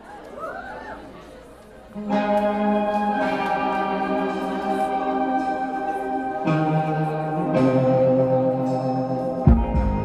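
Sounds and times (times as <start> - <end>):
audience chatter: 0.0 - 10.0
electric guitar chords: 2.0 - 10.0.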